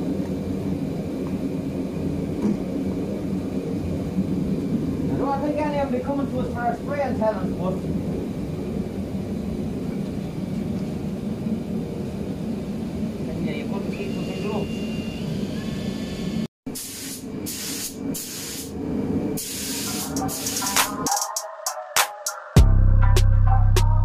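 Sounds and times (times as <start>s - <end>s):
steady low rumble: 0.0s - 14.2s
paint spray gun hissing: 16.7s - 18.8s, 19.4s - 21.0s.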